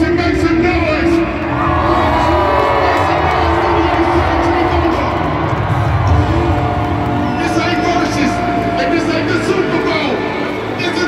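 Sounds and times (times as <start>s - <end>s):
bass-heavy live music: 0.0s - 11.0s
crowd noise: 0.0s - 11.0s.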